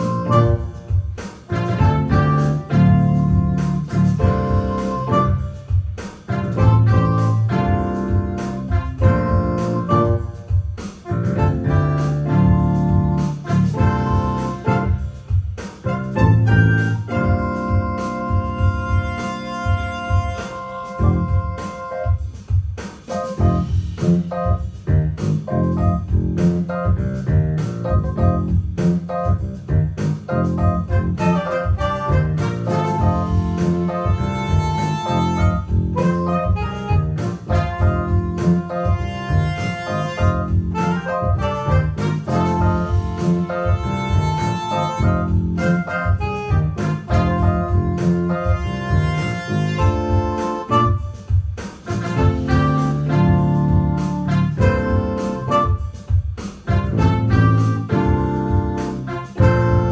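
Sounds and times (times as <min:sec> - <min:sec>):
low bass notes: 0:00.0 - 0:00.9, 0:01.5 - 0:05.6, 0:06.3 - 0:10.4, 0:11.1 - 0:21.6, 0:23.4 - 0:51.0, 0:51.9 - 0:55.8, 0:56.7 - 0:59.9
organ chords: 0:00.0 - 0:05.7, 0:06.3 - 0:10.4, 0:11.1 - 0:15.2, 0:15.8 - 0:22.2, 0:23.1 - 0:51.2, 0:51.9 - 0:55.9, 0:56.7 - 0:59.9
piano: 0:00.0 - 0:59.9.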